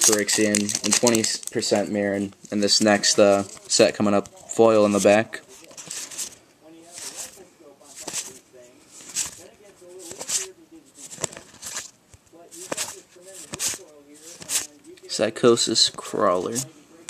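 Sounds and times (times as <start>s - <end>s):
cards flipping: 0.0s - 16.7s.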